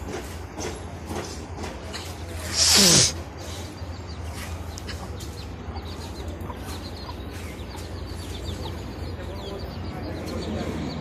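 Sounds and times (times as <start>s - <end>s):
small birds chirping: 0.1s - 11.0s.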